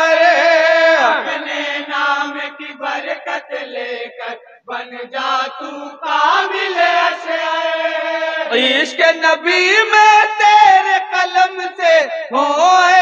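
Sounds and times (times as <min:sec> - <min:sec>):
men singing into a microphone: 0:00.0 - 0:13.0.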